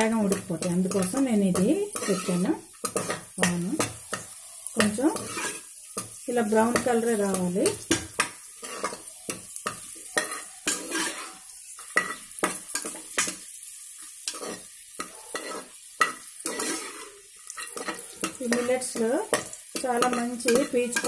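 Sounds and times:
faint frying sizzle: 0.0 - 21.0
spoon scraping metal pot: 0.2 - 5.7, 8.6 - 13.4, 14.3 - 21.0.

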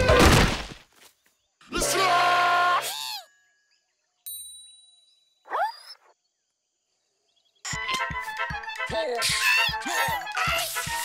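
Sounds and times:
background music with steady beat: 7.7 - 11.0.

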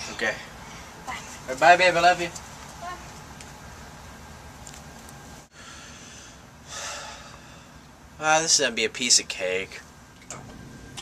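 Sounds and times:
person breathing in: 5.5 - 7.8.

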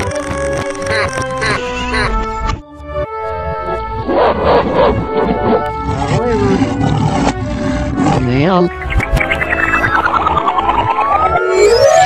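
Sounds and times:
lion roar: 4.1 - 8.5.

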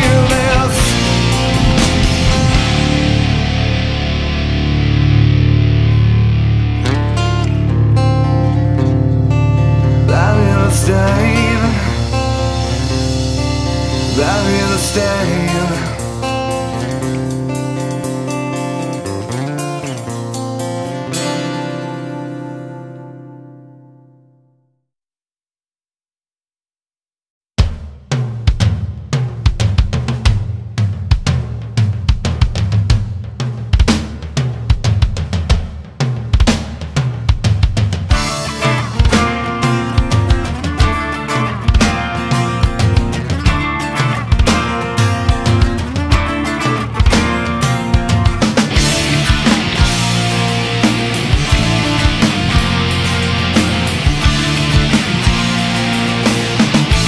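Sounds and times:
low sustained bass: 0.0 - 15.5, 48.8 - 57.0
rock drum kit playing: 0.0 - 22.6, 27.6 - 57.0.

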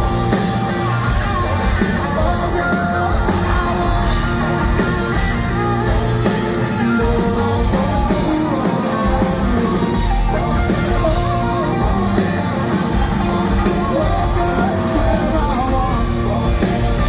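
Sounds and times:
drum beat: 0.0 - 17.0
electric guitars: 0.0 - 17.0.

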